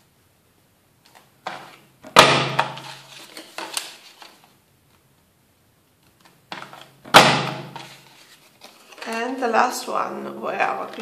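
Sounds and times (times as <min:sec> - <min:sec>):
paper rustling: 0:02.6 - 0:04.6, 0:06.0 - 0:09.5
paper punch clunk: 0:06.5 - 0:07.9.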